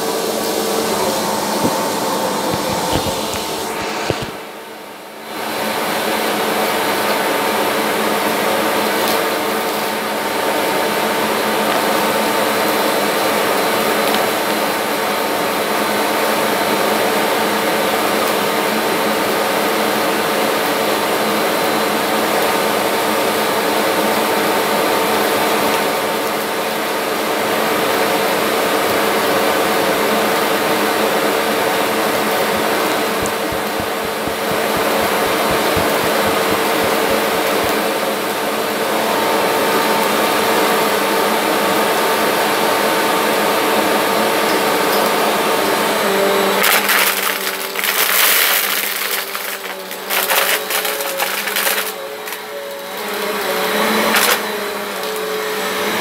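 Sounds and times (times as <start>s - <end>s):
vacuum cleaner running: 0.0s - 56.0s.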